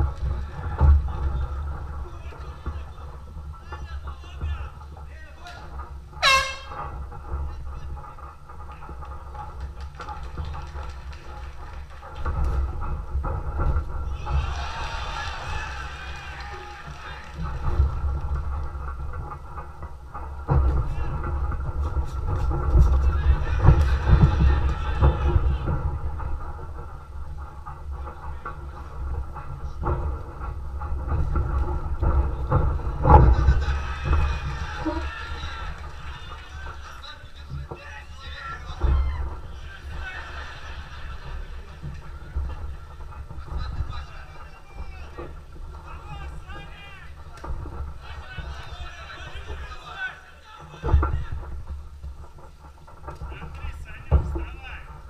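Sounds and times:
air horn blast: 0:06.2 - 0:07.0.

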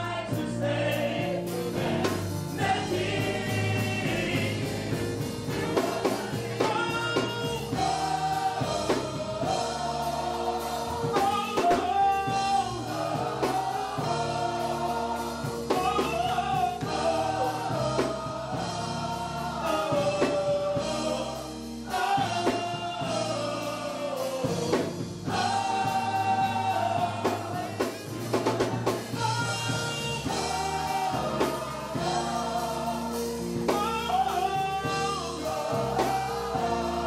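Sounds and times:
gospel choir singing: 0:00.0 - 0:37.0
keyboard: 0:00.0 - 0:37.0
lead vocalist singing: 0:00.0 - 0:37.0.

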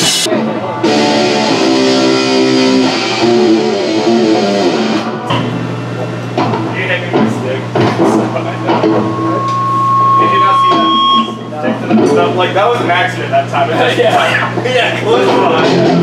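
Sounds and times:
distorted electric guitar: 0:00.0 - 0:11.5
low amp hum: 0:00.2 - 0:16.0
thin high tone: 0:08.4 - 0:11.6.

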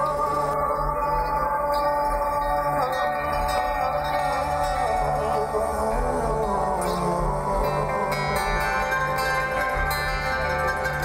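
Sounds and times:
held ringing musical notes: 0:00.0 - 0:11.0
steady low drone: 0:00.0 - 0:11.0.

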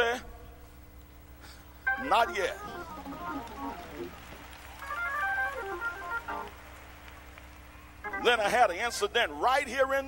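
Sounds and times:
organ keyboard single notes: 0:01.8 - 0:06.7, 0:07.9 - 0:09.3.

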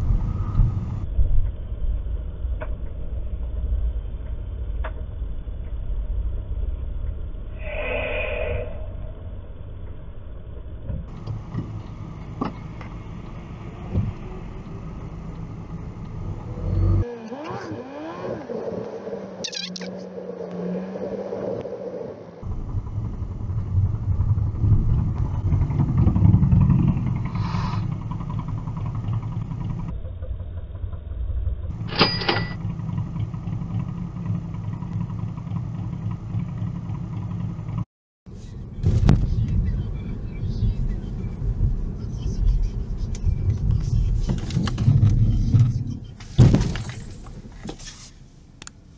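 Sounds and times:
car engine and tyres rumbling: 0:00.0 - 0:48.9.

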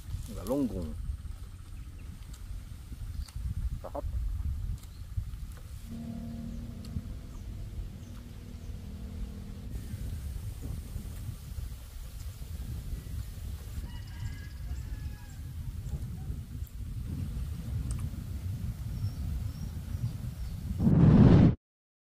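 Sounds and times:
wind buffeting microphone: 0:00.0 - 0:21.6
faint steady drone: 0:05.8 - 0:13.8.

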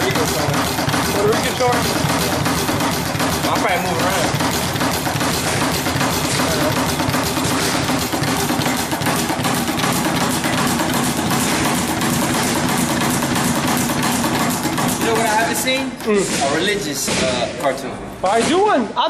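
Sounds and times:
speed bag rattling: 0:00.0 - 0:18.6.

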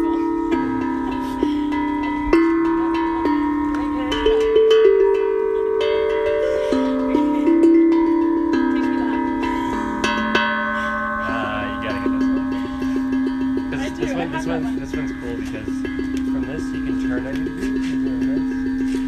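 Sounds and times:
tongue drum notes: 0:00.0 - 0:19.0.

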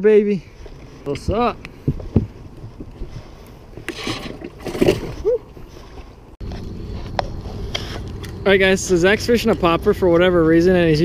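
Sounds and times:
short knocks and scrapes: 0:01.8 - 0:05.2
steady low rumble: 0:05.8 - 0:11.0.

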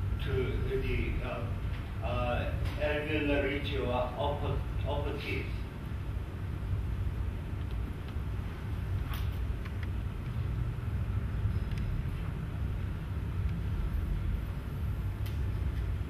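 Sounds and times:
low rumble of room noise: 0:00.0 - 0:16.0.

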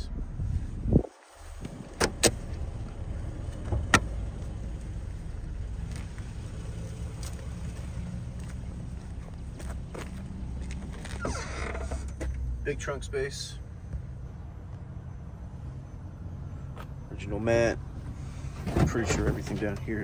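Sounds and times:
car engine idling: 0:00.0 - 0:20.0
creak: 0:11.0 - 0:12.4.

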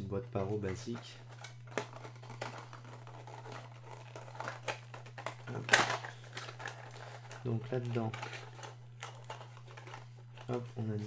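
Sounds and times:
rustling of card and packaging: 0:00.0 - 0:11.0.

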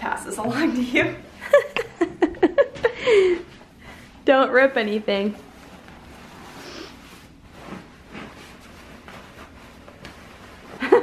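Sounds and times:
fabric rustling and swishing: 0:04.6 - 0:11.0.

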